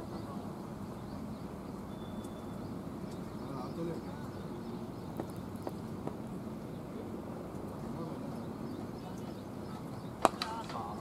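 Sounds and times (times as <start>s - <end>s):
faint distant voices: 0.0s - 1.2s, 3.2s - 5.8s, 6.6s - 11.0s
cricket bat striking ball: 10.2s - 10.8s.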